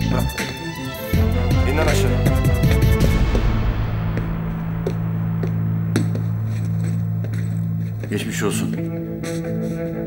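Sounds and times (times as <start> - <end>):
low music drone: 1.1 - 9.2.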